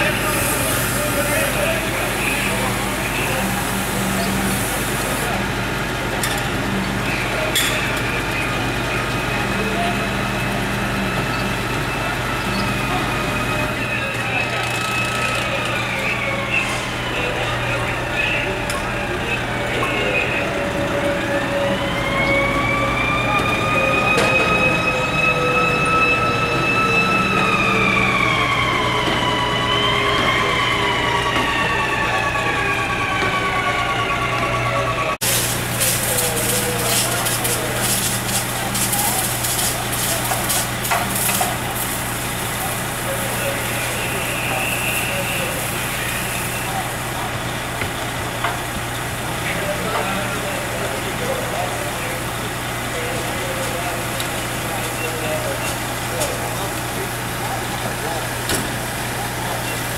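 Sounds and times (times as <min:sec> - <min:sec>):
fire engine siren wailing: 0:00.0 - 0:59.9.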